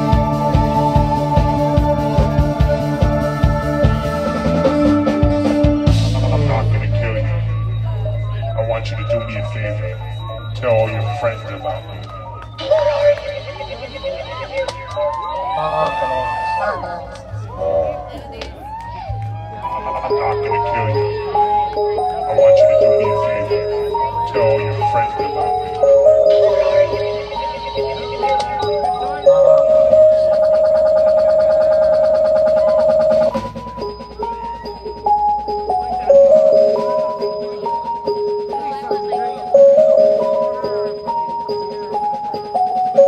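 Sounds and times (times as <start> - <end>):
low electronic drone: 0.0 - 15.2, 19.3 - 43.0
audience talking and calling: 0.0 - 43.0.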